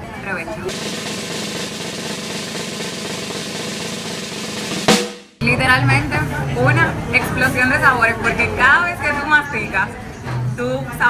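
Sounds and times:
sharp loud drum hit: 0.7 - 5.4
snare drum roll: 0.7 - 5.4.

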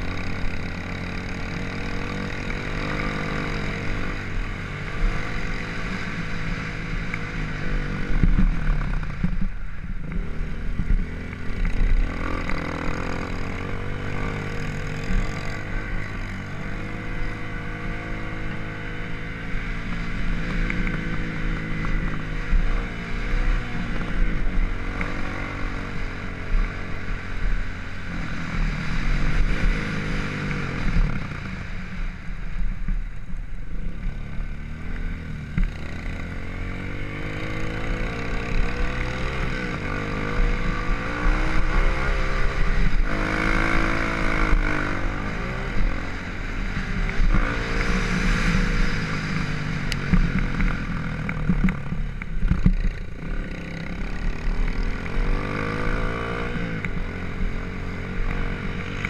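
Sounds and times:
dirt bike engine revving: 52.6 - 59.0.

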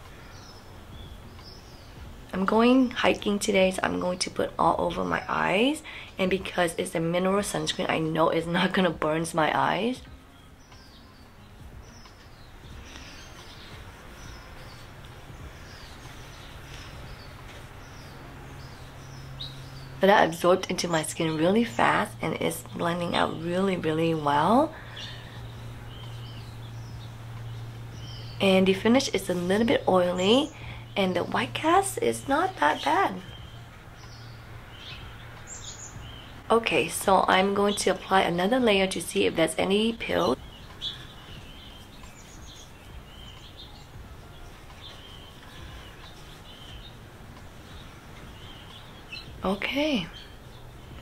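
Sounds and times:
low steady hum: 0.0 - 51.0
outdoor background noise: 0.0 - 51.0.

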